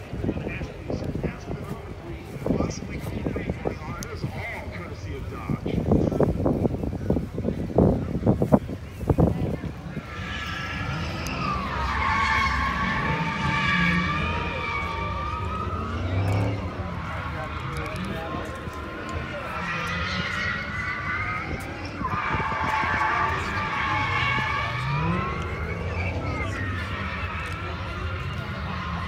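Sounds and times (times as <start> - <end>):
car engine: 5.6 - 29.0
car tyres squealing: 6.0 - 29.0.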